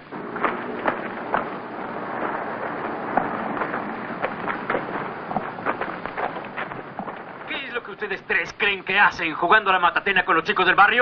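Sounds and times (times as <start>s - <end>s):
boots marching on dirt: 0.0s - 8.6s
film soundtrack hiss: 0.0s - 11.0s.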